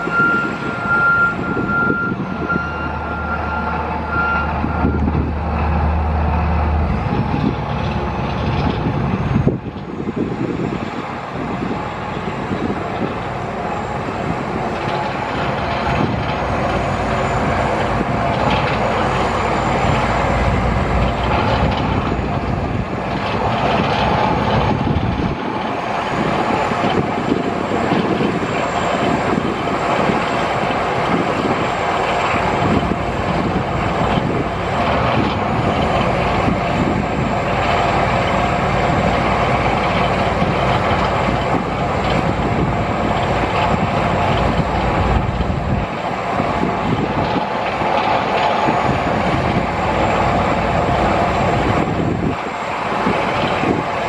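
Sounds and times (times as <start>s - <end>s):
diesel engine running: 0.0s - 54.0s.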